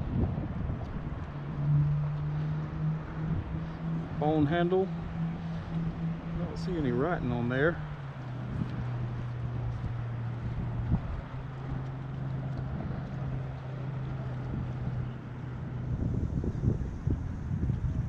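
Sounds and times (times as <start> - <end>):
low engine drone: 0.0 - 18.0
wind noise on microphone: 0.0 - 18.0.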